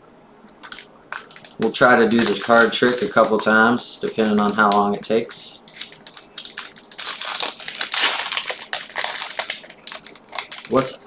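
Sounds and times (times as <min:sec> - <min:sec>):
foil wrapper crinkling: 0:00.5 - 0:11.0.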